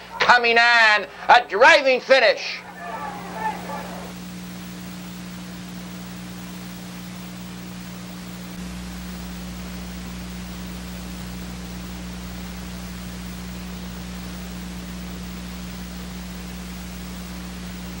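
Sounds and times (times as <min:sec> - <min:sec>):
low electrical hum: 0:00.0 - 0:18.0
old recording hiss: 0:00.0 - 0:18.0.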